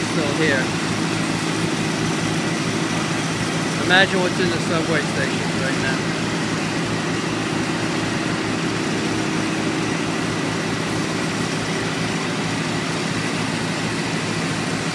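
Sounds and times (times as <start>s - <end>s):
heavy engine humming: 0.0s - 14.9s.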